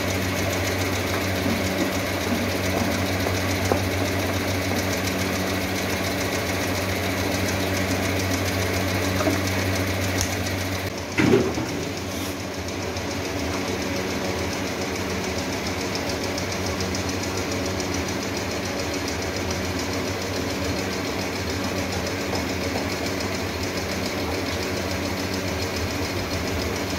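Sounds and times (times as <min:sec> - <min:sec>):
fast regular rattle: 0:00.0 - 0:26.9
machine hum: 0:00.0 - 0:26.9.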